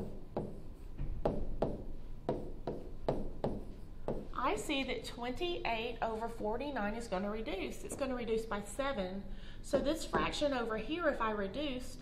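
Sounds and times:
pen tapping on hard surface: 1.2 - 4.3.

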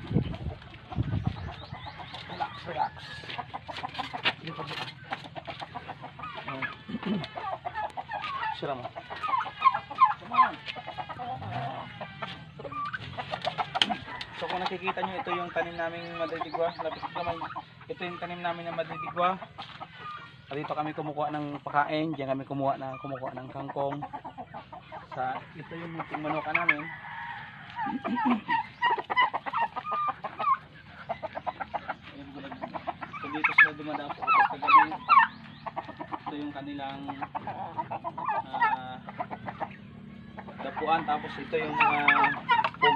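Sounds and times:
chickens clucking: 0.0 - 42.9.

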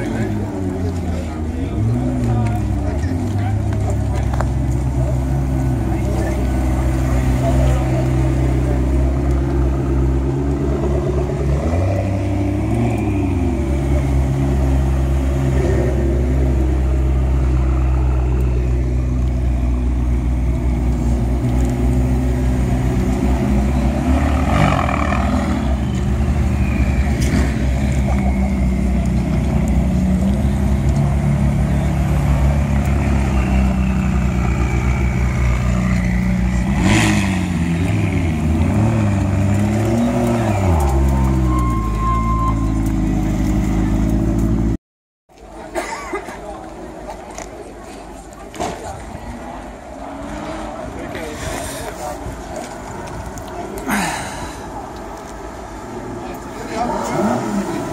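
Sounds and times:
car engines idling: 0.0 - 57.9.

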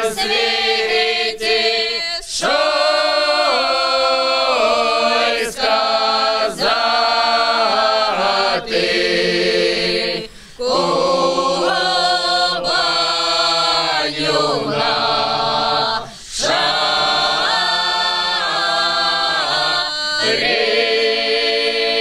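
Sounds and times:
mixed choir singing unaccompanied: 0.0 - 22.0.

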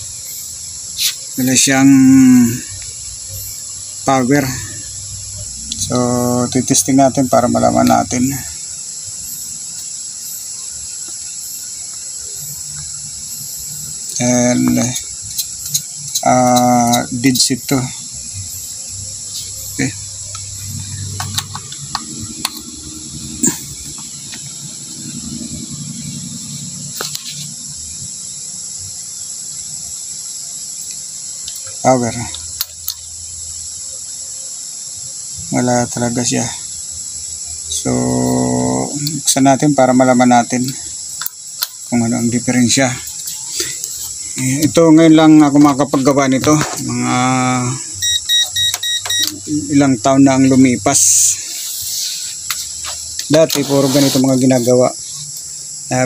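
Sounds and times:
cricket chirring: 0.0 - 56.0
insects trilling: 0.0 - 56.0
man speaking: 1.0 - 2.8, 4.0 - 4.8, 5.8 - 8.6, 14.1 - 15.1, 16.2 - 18.1, 19.4 - 20.1, 31.8 - 32.4, 37.7 - 40.8, 41.9 - 43.1, 44.4 - 48.0, 49.3 - 51.6, 53.3 - 55.0.

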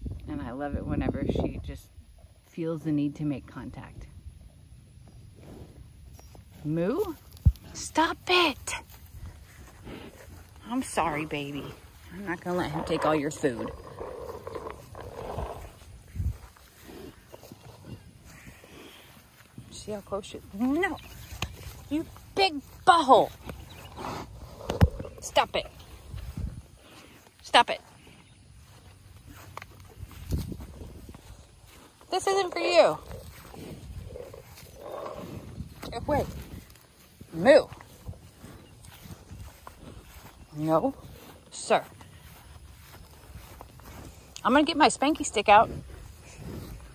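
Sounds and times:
faint footsteps on grass: 1.3 - 46.9.

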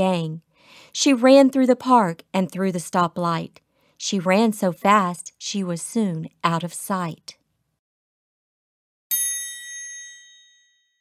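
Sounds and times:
bright bell-like chime: 9.1 - 11.0.

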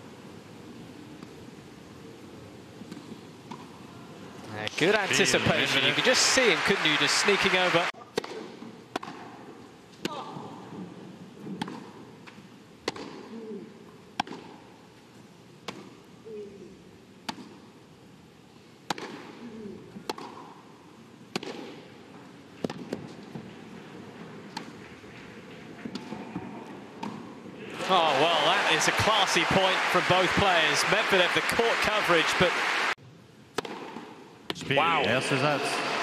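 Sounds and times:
tennis ball struck by racket: 8.1 - 9.3, 11.6 - 12.0, 12.8 - 13.3, 14.2 - 14.6, 18.8 - 19.4, 20.0 - 20.5, 21.3 - 21.8, 22.6 - 23.1, 33.5 - 34.2.

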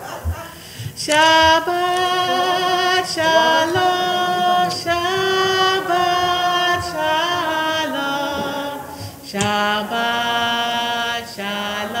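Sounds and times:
person singing slow melody: 0.0 - 12.0.

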